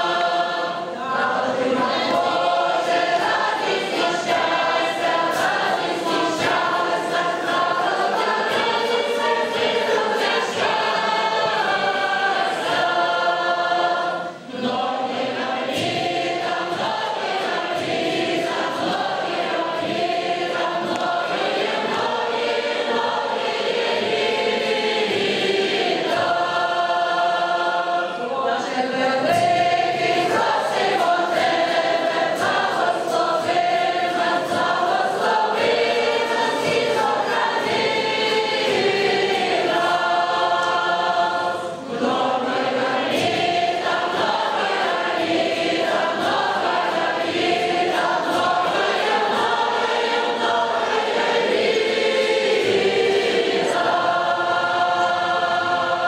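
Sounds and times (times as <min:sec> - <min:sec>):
mixed choir singing folk song: 0:00.0 - 0:56.0.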